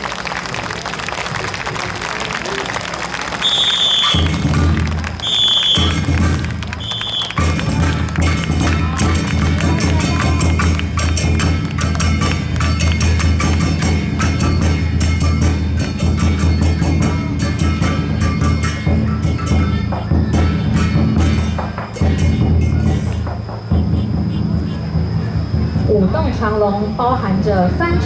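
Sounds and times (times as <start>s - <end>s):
crowd murmur: 0.0s - 27.0s
drums and percussion: 0.0s - 28.0s
short high whistle blasts: 3.4s - 4.3s, 5.2s - 6.0s, 6.8s - 7.4s.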